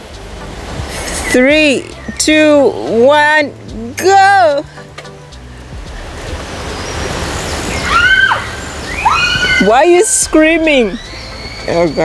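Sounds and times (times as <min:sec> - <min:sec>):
child screaming: 0:07.8 - 0:12.0.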